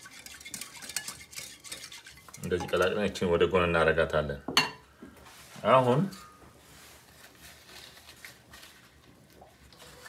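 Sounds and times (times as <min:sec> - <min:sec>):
whisk clicking against glass bowl: 0:00.0 - 0:03.2
liquid swishing: 0:00.0 - 0:03.4.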